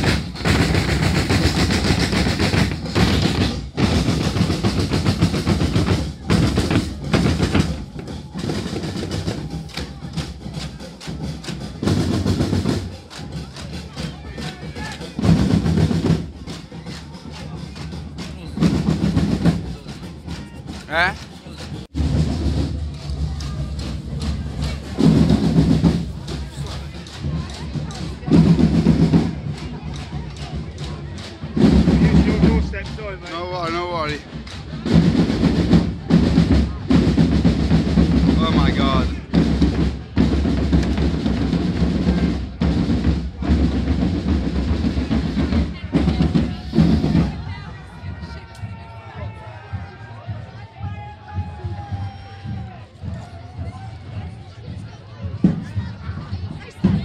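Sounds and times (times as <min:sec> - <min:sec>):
bass and snare drums beating: 0:00.0 - 0:57.0
crowd voices: 0:00.0 - 0:57.0.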